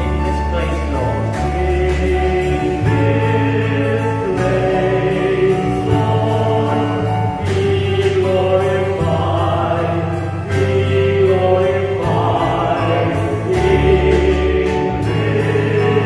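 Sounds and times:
group singing worship song: 0:00.0 - 0:16.0
held bass notes: 0:00.0 - 0:16.0.

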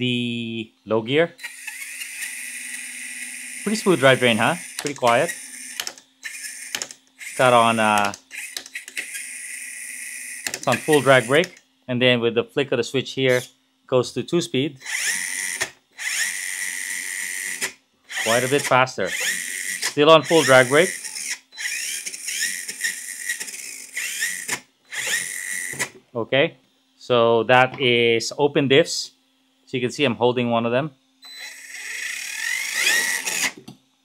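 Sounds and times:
electric motor whine: 0:01.4 - 0:11.6, 0:14.8 - 0:26.0, 0:31.2 - 0:33.8.

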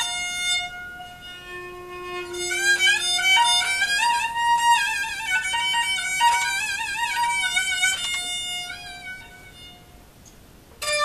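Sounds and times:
spike fiddle bowed note: 0:00.0 - 0:10.1, 0:10.8 - 0:11.0.

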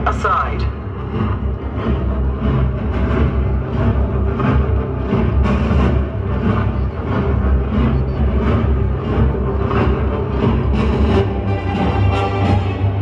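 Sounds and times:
dramatic orchestral music: 0:00.0 - 0:13.0.

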